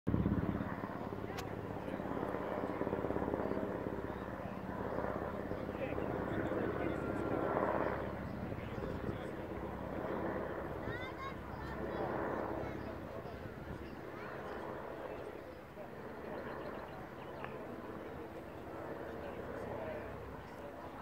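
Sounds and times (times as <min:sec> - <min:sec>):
helicopter rotor beating: 0:00.1 - 0:21.0
voices murmuring: 0:00.1 - 0:21.0.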